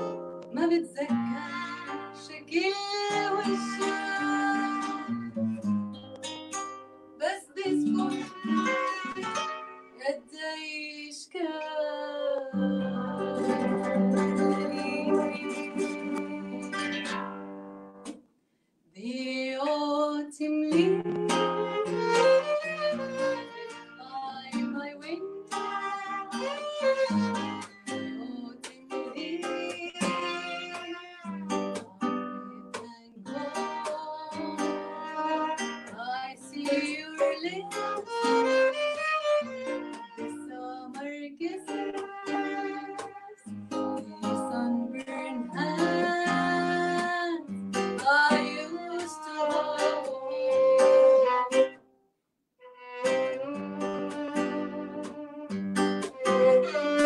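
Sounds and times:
violin melody: 0:00.0 - 0:06.8, 0:07.6 - 0:10.2, 0:12.4 - 0:17.6, 0:20.7 - 0:51.8, 0:52.6 - 0:57.0
plucked guitar chords: 0:00.0 - 0:10.4, 0:11.6 - 0:18.2, 0:20.6 - 0:51.8, 0:52.7 - 0:57.0.

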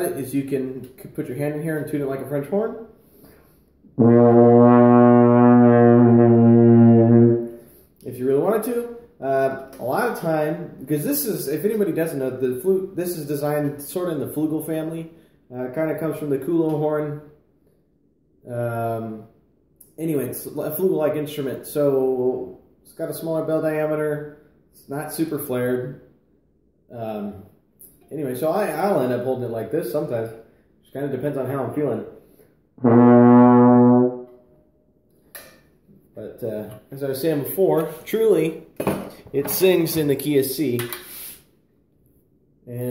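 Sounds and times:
brass horn holding low note: 0:04.0 - 0:07.6, 0:32.8 - 0:34.4.

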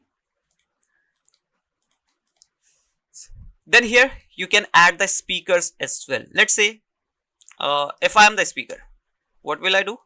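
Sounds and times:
keyboard and mouse clicks: 0:00.4 - 0:02.6.

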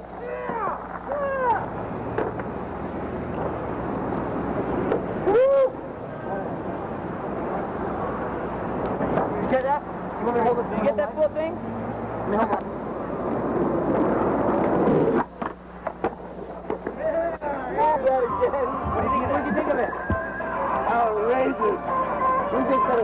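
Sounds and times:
steady hiss and low hum: 0:00.0 - 0:23.0
loud whoop: 0:00.2 - 0:01.7, 0:05.2 - 0:05.8
burst of chatter: 0:18.6 - 0:22.6.

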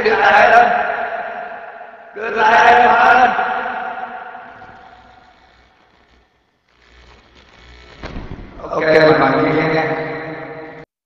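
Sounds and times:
man's voice with echo: 0:00.0 - 0:04.8, 0:08.6 - 0:10.9.

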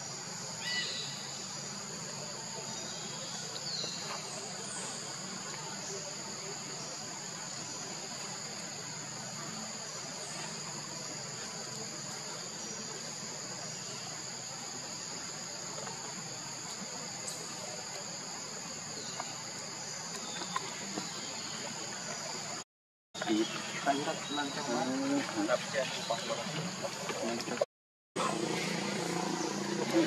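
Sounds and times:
insects chorus: 0:00.0 - 0:22.6, 0:23.2 - 0:30.0
outdoor background hiss: 0:00.0 - 0:22.6, 0:23.2 - 0:30.0.

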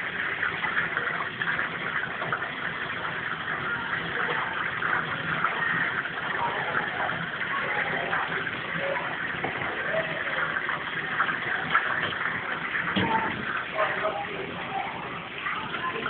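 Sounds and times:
oil sizzling in deep fryer: 0:00.0 - 0:16.0.

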